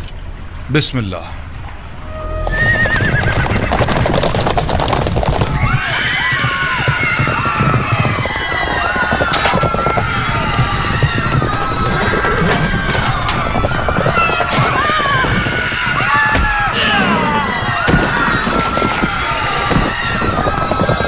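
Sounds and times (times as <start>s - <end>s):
horses whinnying: 2.0s - 21.0s
clatter of hooves: 2.4s - 16.2s, 17.3s - 21.0s
people crying out: 5.6s - 21.0s.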